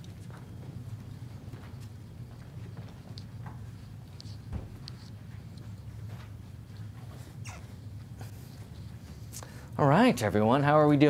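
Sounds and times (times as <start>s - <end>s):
children's footsteps: 0.0s - 9.2s
steady low hum: 0.0s - 11.0s.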